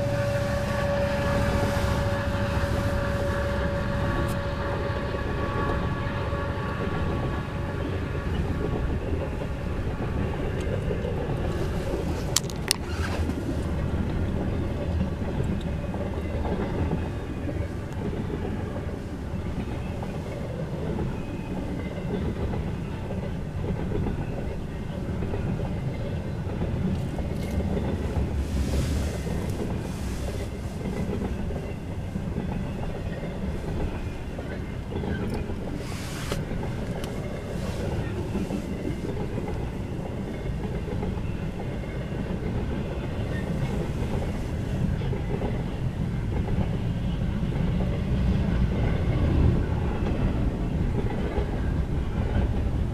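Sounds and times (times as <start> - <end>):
held tone: 0.0 - 6.2
clickety-clack of wheels on rails: 0.0 - 52.9
freight train cars rumbling: 0.0 - 52.9.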